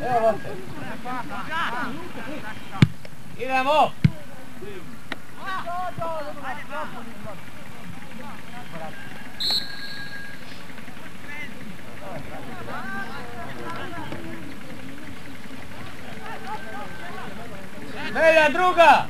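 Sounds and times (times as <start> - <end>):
distant shouting voices: 0.0 - 19.0
referee's whistle blast: 9.4 - 10.5.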